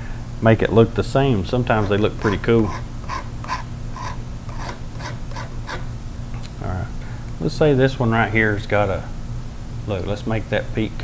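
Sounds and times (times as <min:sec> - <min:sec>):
low electrical hum: 0:00.0 - 0:11.0
palette knife scraping paint: 0:01.6 - 0:05.9.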